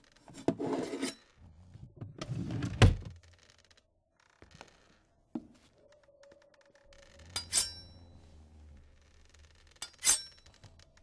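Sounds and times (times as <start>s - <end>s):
faint low hum: 5.6s - 11.0s.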